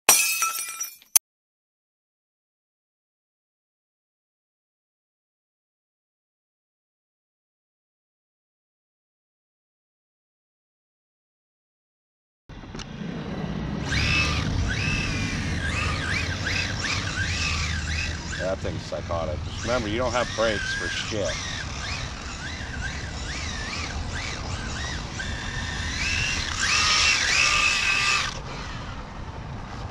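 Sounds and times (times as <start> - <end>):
glass breaking: 0.1 - 1.2
low rumble of wheels on asphalt: 12.5 - 29.9
electric motor whining: 12.6 - 29.9.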